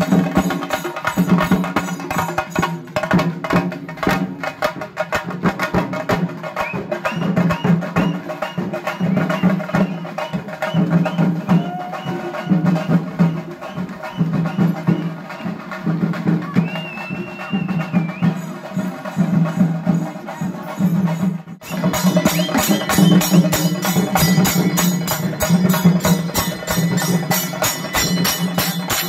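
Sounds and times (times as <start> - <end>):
fast drumming: 0.0 - 29.0
high held tone: 21.6 - 29.0.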